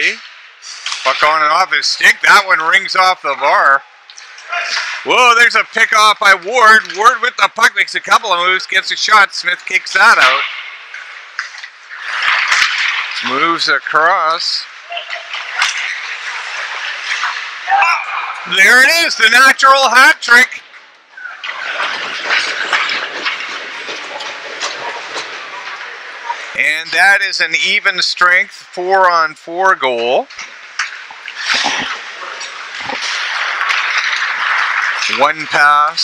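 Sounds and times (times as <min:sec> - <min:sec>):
faint clicks of sticks or puck: 0:00.1 - 0:01.3, 0:04.1 - 0:05.0, 0:10.4 - 0:13.3, 0:14.9 - 0:17.5, 0:20.7 - 0:26.5, 0:30.2 - 0:35.2.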